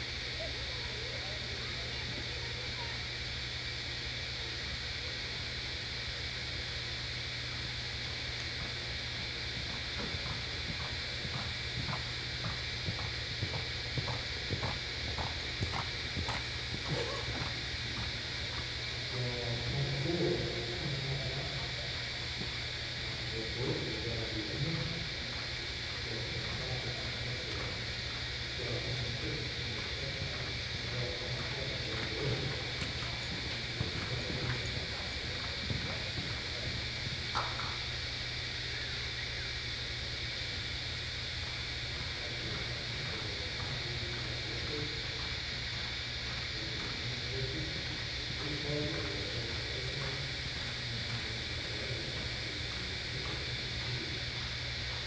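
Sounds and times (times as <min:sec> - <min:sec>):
faint voices: 0:00.0 - 0:55.0
steady arena hum: 0:00.0 - 0:55.0
horse hoofbeats on dirt: 0:31.2 - 0:36.8.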